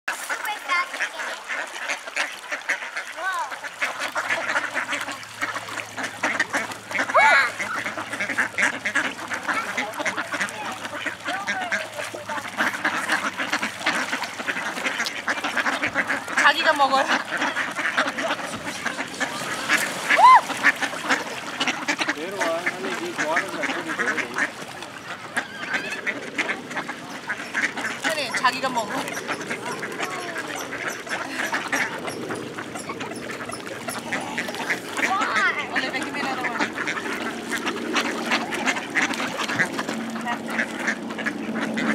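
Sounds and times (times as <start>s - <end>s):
ducks quacking: 0.1s - 41.9s.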